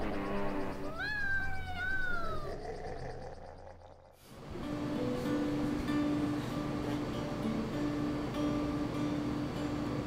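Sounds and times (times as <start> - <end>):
cat meowing: 0.9 - 2.5
acoustic guitar music: 4.4 - 10.0.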